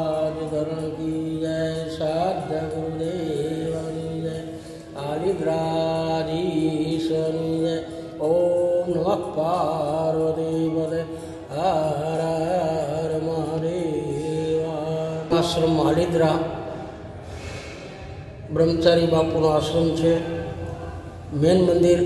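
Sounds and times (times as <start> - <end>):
man chanting a mantra: 0.0 - 17.0, 18.4 - 22.0.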